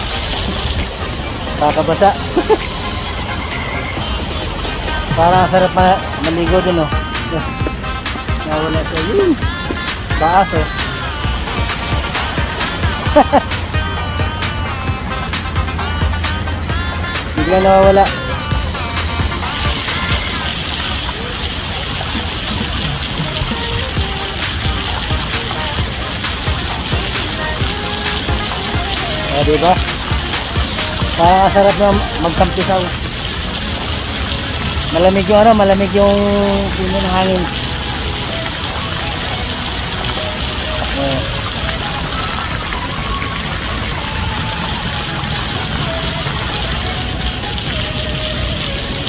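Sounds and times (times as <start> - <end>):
fountain water splashing: 0.0 - 49.0
music playing: 0.0 - 49.0.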